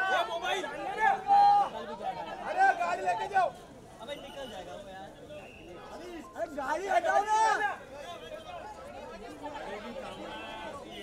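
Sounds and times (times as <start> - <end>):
people talking over each other: 0.0 - 11.0.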